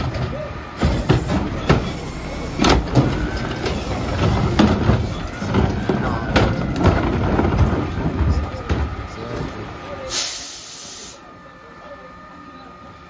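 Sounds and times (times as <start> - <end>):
plastic cart thuds and clatter: 0.0 - 9.4
garbage truck engine rumble: 0.0 - 13.0
air hiss burst: 0.8 - 4.7, 10.1 - 11.2.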